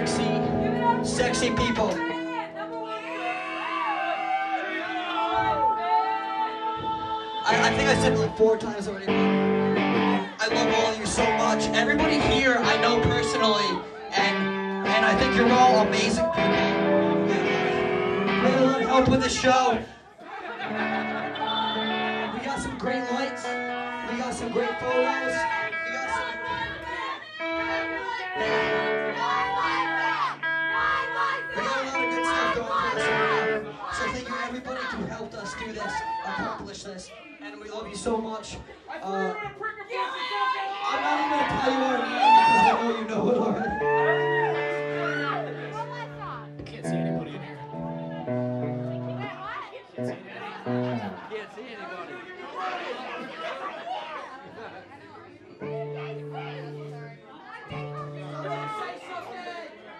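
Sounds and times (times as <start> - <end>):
audience chatter: 0.0 - 59.9
electric guitars sustained notes: 9.0 - 19.0, 27.4 - 33.8, 43.8 - 51.2, 55.6 - 58.8
live rock band playing: 9.0 - 19.4, 20.6 - 33.8, 43.8 - 51.2
sustained keyboard chords: 44.7 - 51.2, 55.6 - 58.9.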